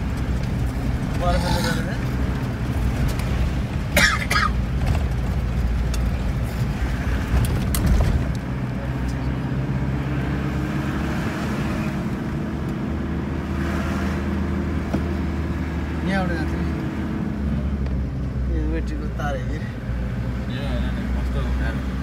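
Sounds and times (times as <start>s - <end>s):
car engine running: 0.0s - 22.0s
road noise inside car: 0.0s - 22.0s.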